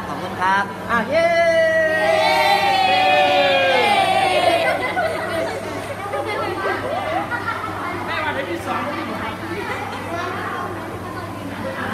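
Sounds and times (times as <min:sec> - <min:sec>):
steady low hum: 0:00.0 - 0:11.9
girls chattering: 0:02.0 - 0:11.9.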